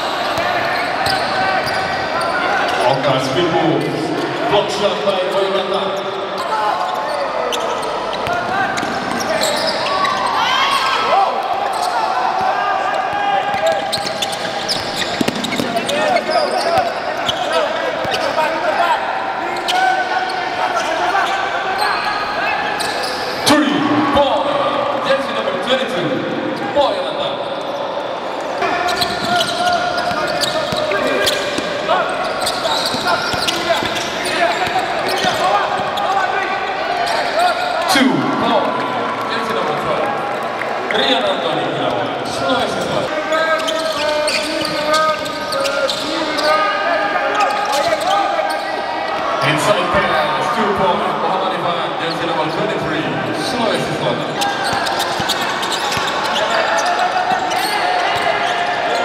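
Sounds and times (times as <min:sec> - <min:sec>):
basketball bouncing on hardwood: 0:14.8 - 0:15.8.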